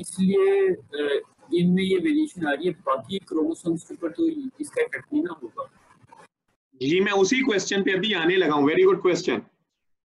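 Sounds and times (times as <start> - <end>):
person speaking: 0.0 - 9.5.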